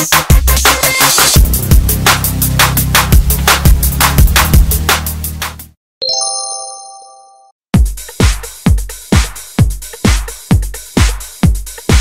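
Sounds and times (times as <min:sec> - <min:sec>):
bright chime: 0:06.0 - 0:07.5.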